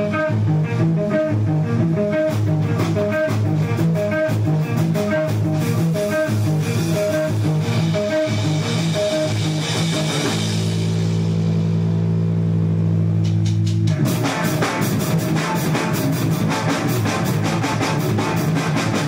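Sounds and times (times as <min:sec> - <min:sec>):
drums: 0:00.0 - 0:19.0
electric guitar riff: 0:00.0 - 0:19.0.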